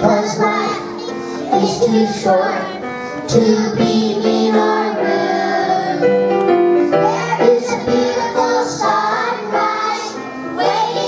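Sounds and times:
children singing: 0:00.0 - 0:06.2, 0:06.9 - 0:11.0.

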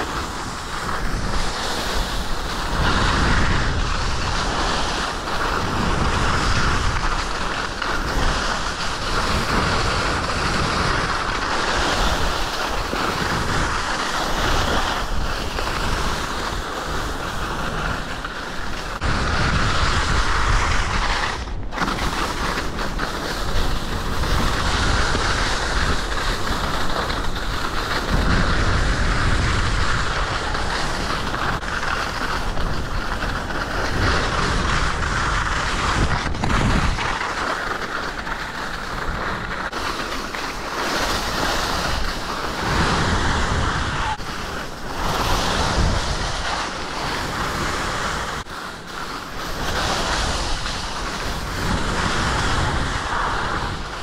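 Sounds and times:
skis scraping on snow: 0:00.0 - 0:54.0
wind buffeting microphone: 0:00.0 - 0:54.0.

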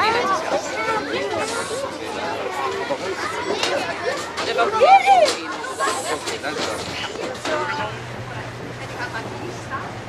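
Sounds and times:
group of people chattering: 0:00.0 - 0:10.0.

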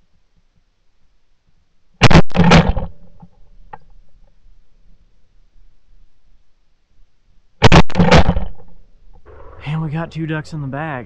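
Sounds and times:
shotgun shots: 0:02.0 - 0:03.1, 0:07.6 - 0:10.1.

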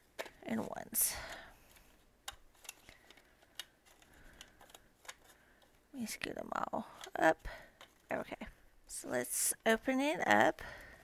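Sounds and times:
paper banknotes rustling: 0:01.6 - 0:05.8.

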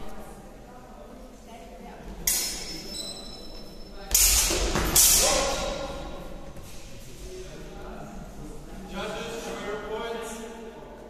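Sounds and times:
fencing swords clashing: 0:02.2 - 0:06.2.

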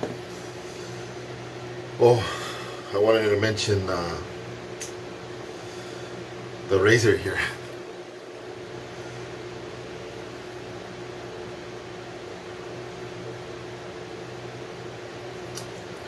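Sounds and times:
fan humming: 0:00.0 - 0:16.0.

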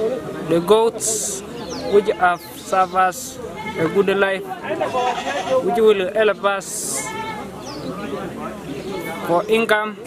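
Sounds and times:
goats bleating: 0:03.4 - 0:05.8, 0:06.8 - 0:07.5.

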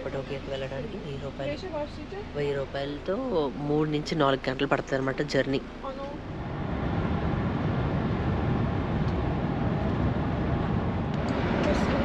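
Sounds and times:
coach engine and road rumble: 0:00.0 - 0:12.0.

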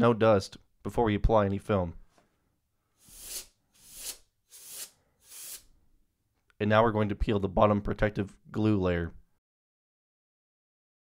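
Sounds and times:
air duster hissing blasts: 0:03.0 - 0:05.7.

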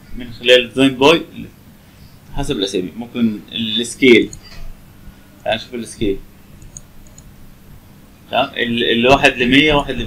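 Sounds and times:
low hiss: 0:00.0 - 0:10.0
computer mouse clicks: 0:04.3 - 0:04.7, 0:06.6 - 0:07.3.

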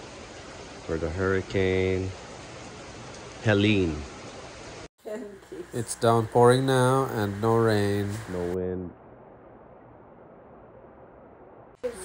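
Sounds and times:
heavy rain falling: 0:00.0 - 0:08.7.

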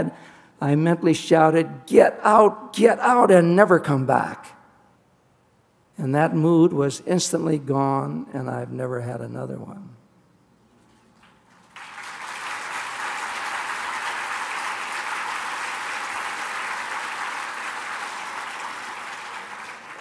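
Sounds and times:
large audience applauding: 0:11.2 - 0:20.0.

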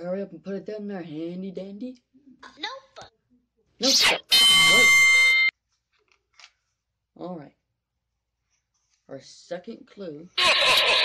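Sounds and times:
electronic buzzer: 0:03.8 - 0:05.5, 0:10.4 - 0:11.0.

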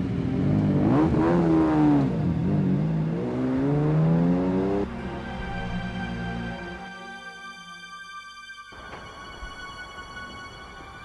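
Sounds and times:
car engine accelerating hard: 0:00.0 - 0:06.4.

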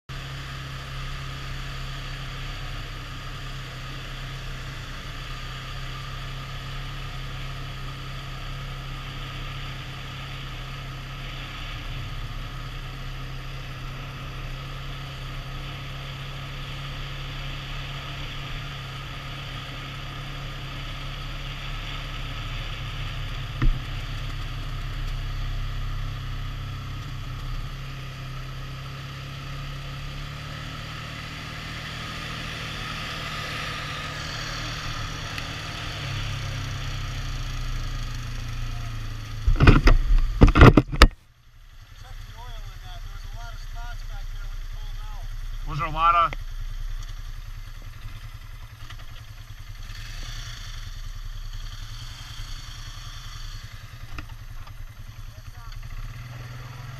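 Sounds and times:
road noise: 0:00.1 - 0:56.9
vehicle engine running: 0:00.1 - 0:56.9.

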